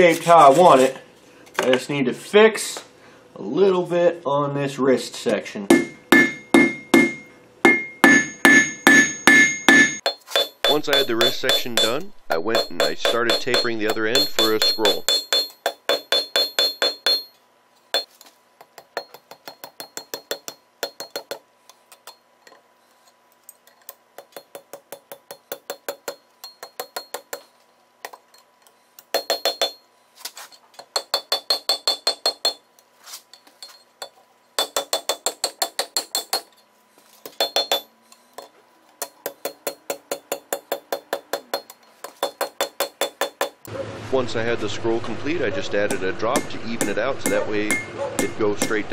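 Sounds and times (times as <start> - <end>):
hammer striking steel on anvil: 5.7 - 17.4, 29.2 - 29.8, 31.0 - 32.6, 37.3 - 37.9, 39.0 - 43.6, 45.9 - 48.9.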